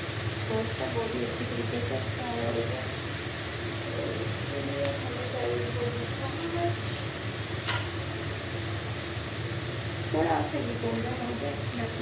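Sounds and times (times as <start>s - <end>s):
onions sizzling in oil: 0.0s - 12.0s.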